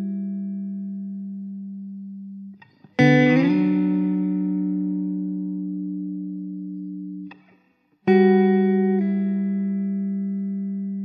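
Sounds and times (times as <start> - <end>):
slow guitar notes and chords: 0.0 - 11.0.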